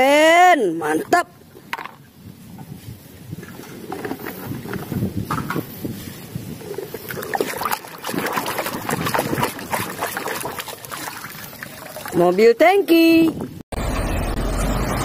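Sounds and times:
water sloshing in a basin: 3.3 - 5.2, 6.2 - 12.6.

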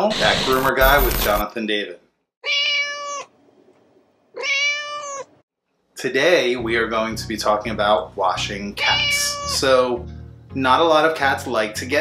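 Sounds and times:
cat meowing: 2.4 - 3.4, 4.3 - 5.4, 8.8 - 9.6.

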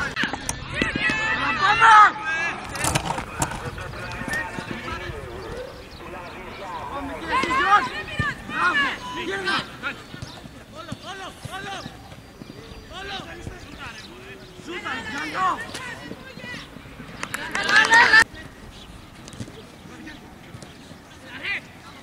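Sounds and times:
outdoor background noise: 0.0 - 22.0
people shouting calls: 0.6 - 3.0, 3.9 - 18.5.

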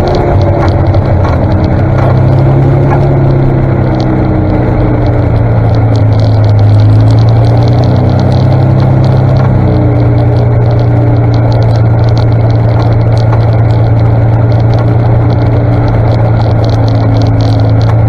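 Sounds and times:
engine droning: 0.0 - 18.0
light rapid ticking: 0.0 - 18.0.

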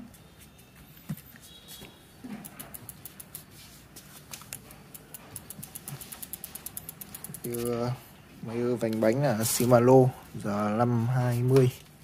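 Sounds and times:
bicycle freehub ticking: 2.5 - 3.4, 4.9 - 7.8.

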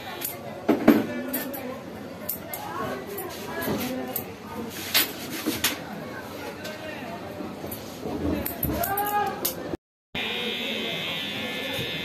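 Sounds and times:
electric hair trimmer buzzing: 10.2 - 12.0.

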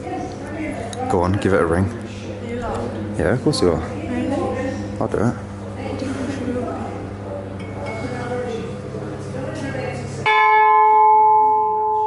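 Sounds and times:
ship's bell ringing: 10.2 - 12.0.

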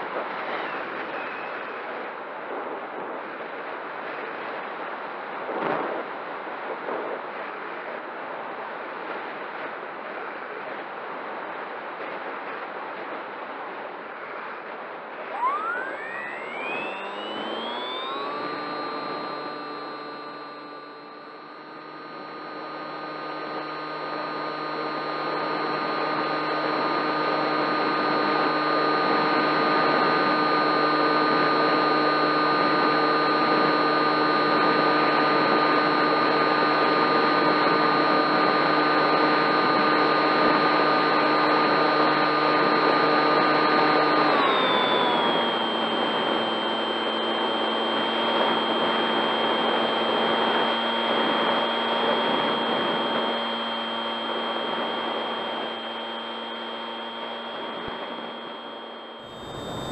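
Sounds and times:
electric motor propeller whining: 15.3 - 59.9.

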